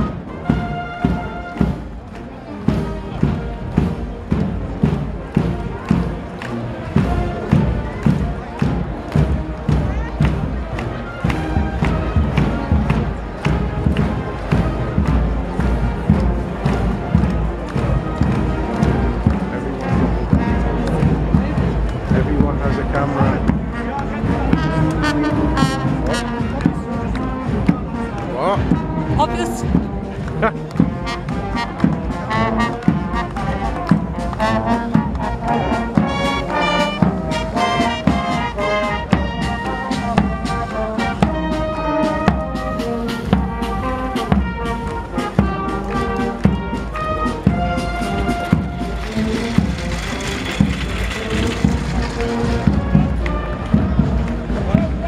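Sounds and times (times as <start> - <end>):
crowd voices: 0.0 - 55.0
marching brass band playing: 0.0 - 55.0.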